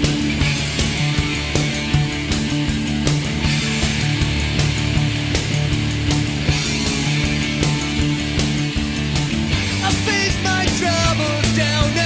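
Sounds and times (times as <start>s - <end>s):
rock song with steady beat: 0.0s - 12.0s.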